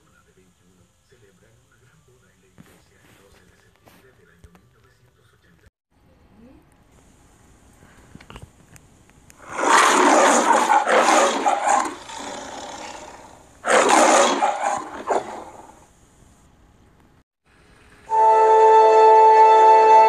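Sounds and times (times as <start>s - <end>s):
lion roaring: 9.4s - 15.8s.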